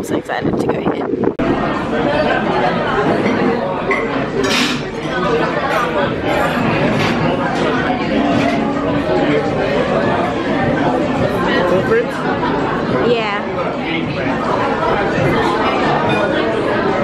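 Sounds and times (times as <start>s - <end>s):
babble of overlapping conversation: 0.0s - 17.0s.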